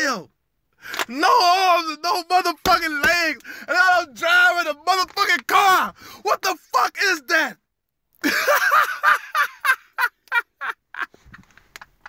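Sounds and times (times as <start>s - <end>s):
man laughing hard: 8.2s - 11.4s.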